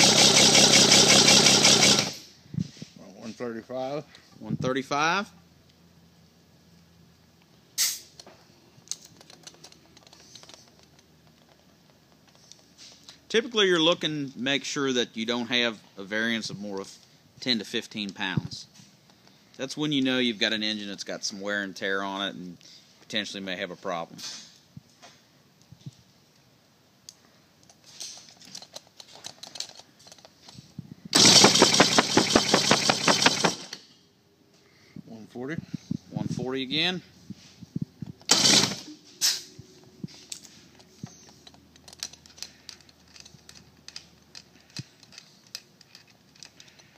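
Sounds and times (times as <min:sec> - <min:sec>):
outboard engine cranking: 0:00.0 - 0:02.2, 0:31.2 - 0:33.7, 0:38.3 - 0:38.8
gauge hose clicks and rattles: 0:07.8 - 0:13.2, 0:27.1 - 0:30.6, 0:31.2 - 0:33.8, 0:40.0 - 0:46.9.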